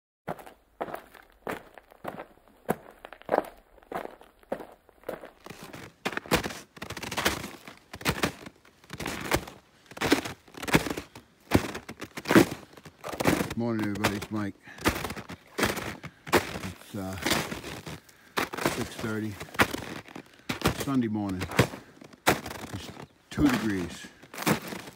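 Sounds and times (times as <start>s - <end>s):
footsteps crunching in snow: 0.3s - 24.9s.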